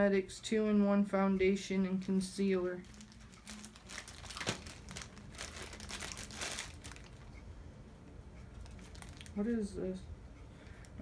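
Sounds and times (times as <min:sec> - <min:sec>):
packaging crinkling: 0:02.8 - 0:07.3, 0:08.6 - 0:09.4.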